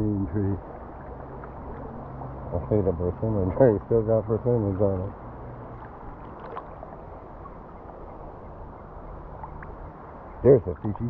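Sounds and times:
river water swishing around wader: 0:00.0 - 0:11.0
small water splashes: 0:00.2 - 0:11.0.

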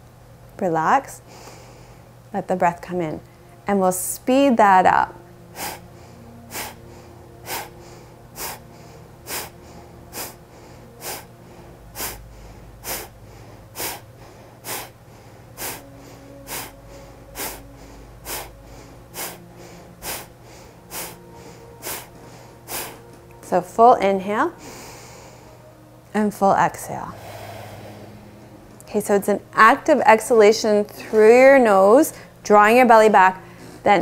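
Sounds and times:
sharp forceful nasal exhales: 0:05.6 - 0:05.8, 0:09.3 - 0:10.4, 0:11.0 - 0:11.3, 0:12.0 - 0:13.1, 0:13.8 - 0:15.0, 0:15.6 - 0:16.8, 0:19.2 - 0:20.3, 0:21.8 - 0:22.1, 0:22.7 - 0:23.0, 0:27.1 - 0:28.8.

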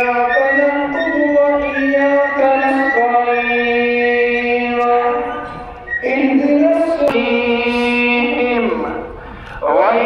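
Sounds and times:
man chanting recitation: 0:00.0 - 0:10.0.

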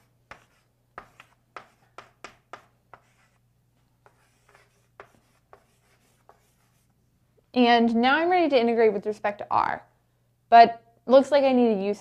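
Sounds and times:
chalk tapping and scratching: 0:00.0 - 0:07.0.

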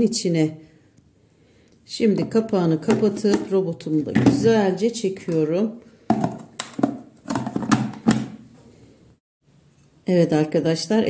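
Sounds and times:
plastic lid knocks and clicks: 0:02.2 - 0:04.5, 0:06.1 - 0:08.4.

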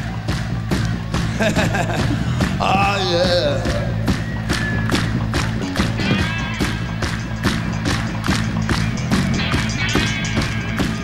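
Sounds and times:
live rock band playing: 0:02.6 - 0:11.0.

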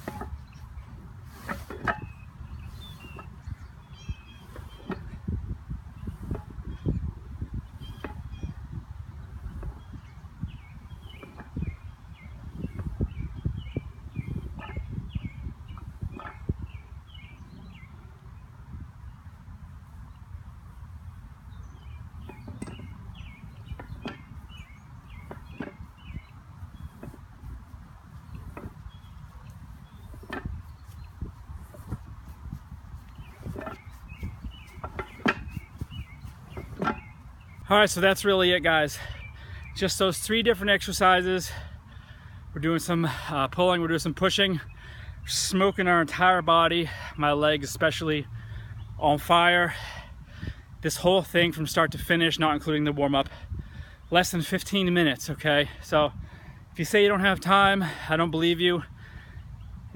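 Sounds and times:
wind on microphone: 0:00.0 - 0:43.3, 0:46.9 - 0:59.9.

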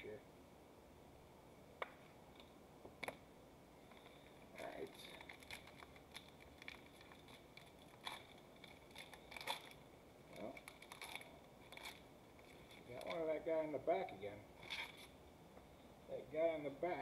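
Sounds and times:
foil wrapper crinkling and tearing: 0:04.0 - 0:09.8, 0:10.4 - 0:13.3.

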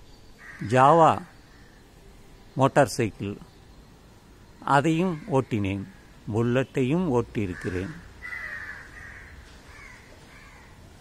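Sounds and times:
bird calling: 0:04.5 - 0:10.8.

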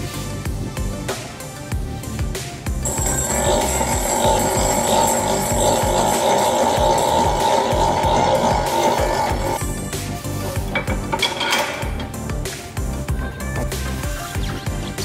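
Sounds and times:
background music: 0:00.0 - 0:15.0
power tool running: 0:02.8 - 0:09.6.

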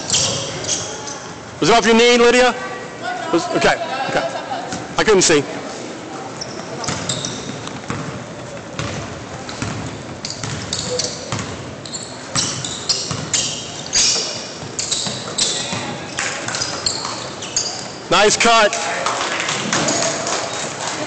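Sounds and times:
sneakers squeaking: 0:00.0 - 0:01.6, 0:04.0 - 0:05.0, 0:05.7 - 0:18.1
basketball bouncing: 0:06.8 - 0:11.7, 0:12.3 - 0:13.4.

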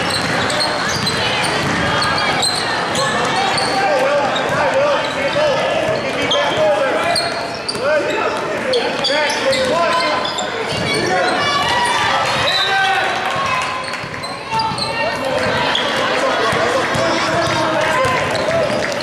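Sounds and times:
unclear voices: 0:00.0 - 0:19.0
basketball dribbling on gym floor: 0:01.0 - 0:02.1.

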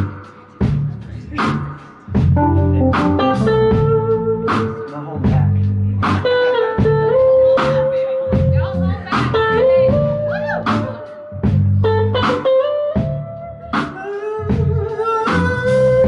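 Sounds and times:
drum kit: 0:00.0 - 0:16.0
keyboard groove: 0:00.0 - 0:16.0
electric guitar lead: 0:02.3 - 0:04.9, 0:06.2 - 0:13.8.

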